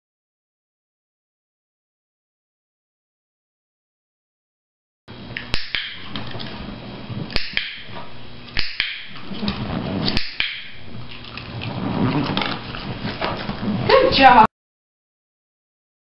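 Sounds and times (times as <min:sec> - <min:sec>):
sharp clicks: 0:07.3 - 0:07.8
dog chewing: 0:10.9 - 0:13.8.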